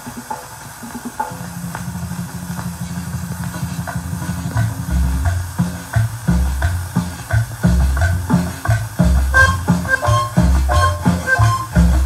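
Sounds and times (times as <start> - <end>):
record surface hiss: 0.0 - 12.0
heavy low beats: 1.9 - 12.0
low buzzing note: 9.3 - 12.0.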